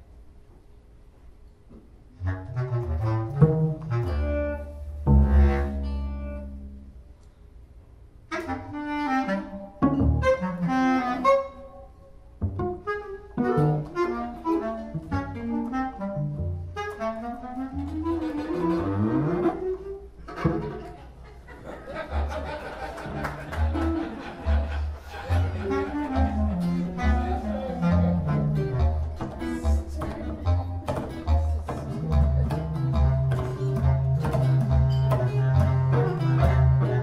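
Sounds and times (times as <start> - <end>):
improvised clarinet cello and guitar: 2.1 - 7.3, 8.3 - 21.9, 22.8 - 37.0.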